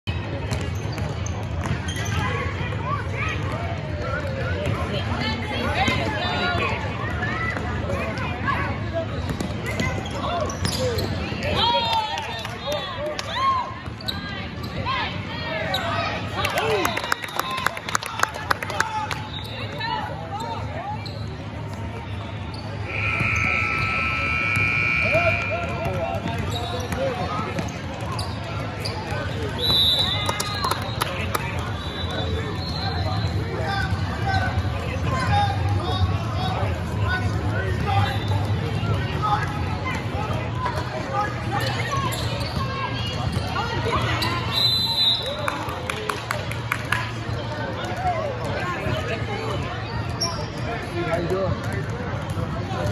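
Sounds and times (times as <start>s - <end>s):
people talking: 0.1s - 52.9s
spectators' voices: 0.1s - 52.9s.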